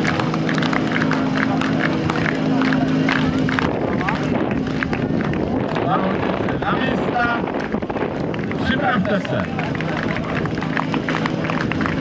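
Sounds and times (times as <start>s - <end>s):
chatter of spectators: 0.0s - 12.0s.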